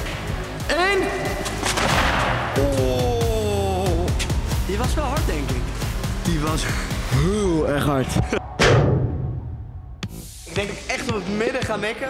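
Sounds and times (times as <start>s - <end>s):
heavy thud with low decay: 8.6s - 10.1s.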